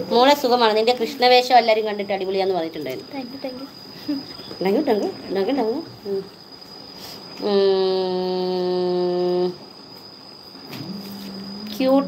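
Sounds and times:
woman humming a note: 10.8s - 12.0s.

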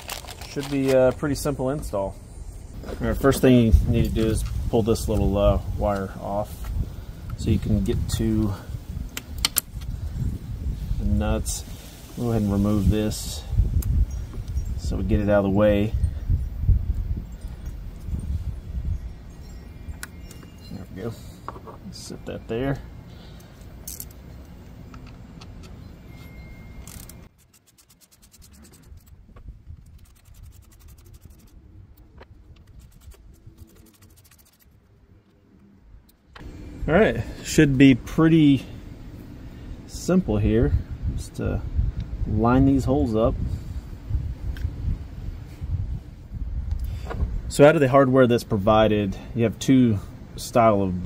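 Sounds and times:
low steady rumble: 0.0s - 51.0s
ratchet and socket clinking: 23.6s - 29.1s
ratchet clicking: 29.9s - 31.5s.

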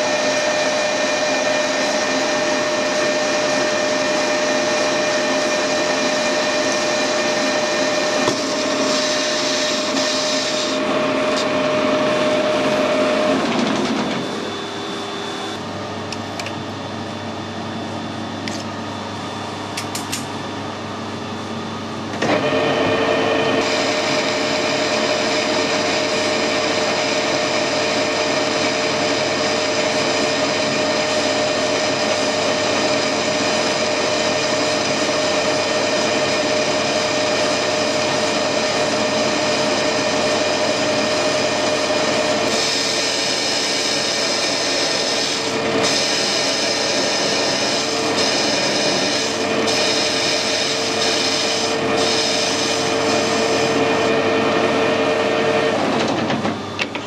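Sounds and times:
lathe tool cutting whine: 0.0s - 19.5s, 20.7s - 57.0s
lathe spindle running: 0.0s - 19.7s, 20.4s - 57.0s.

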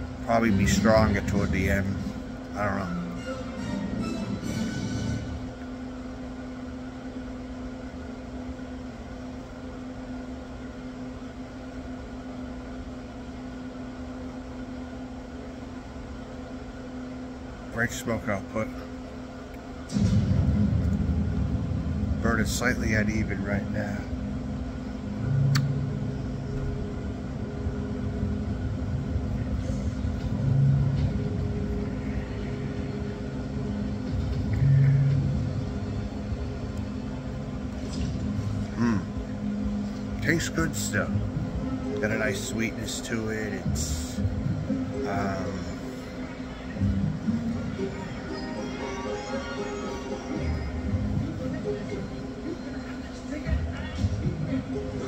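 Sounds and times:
steady mechanical hum: 0.0s - 55.0s
low background rumble: 14.0s - 49.3s.

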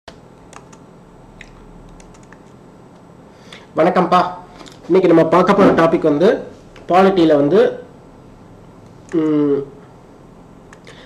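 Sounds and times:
low steady hum: 0.1s - 11.0s
computer key clicks: 0.5s - 0.8s, 1.4s - 2.5s.

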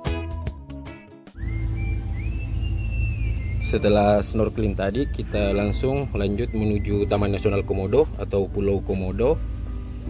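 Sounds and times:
background music: 0.0s - 10.0s
thin high whistling tone: 1.4s - 8.2s
motor boat rumble: 1.4s - 10.0s.

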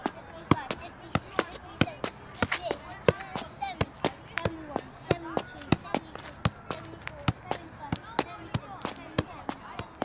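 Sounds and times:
football kicks: 0.0s - 10.0s.

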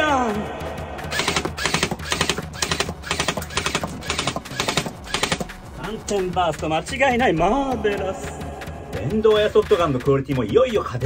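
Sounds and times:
airsoft gun firing bursts: 1.0s - 5.7s.

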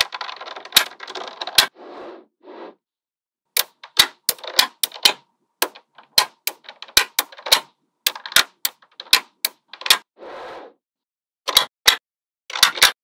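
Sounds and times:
loose balls rattling: 0.0s - 1.7s, 3.6s - 10.0s, 11.5s - 13.0s
magnetic balls clicking: 3.6s - 10.1s.

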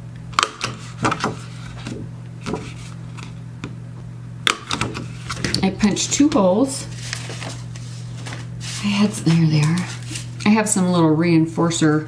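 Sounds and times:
steady low hum: 0.0s - 12.0s
paper punch clicking: 0.4s - 2.0s
paper rustling: 0.6s - 3.4s, 4.9s - 10.4s.

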